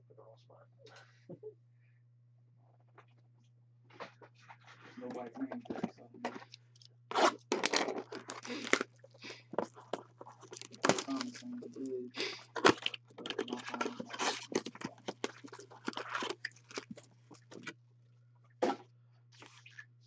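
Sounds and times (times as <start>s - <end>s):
plastic wrap tearing: 7.1s - 11.6s, 12.2s - 17.7s
foil packs rustling: 7.1s - 17.6s.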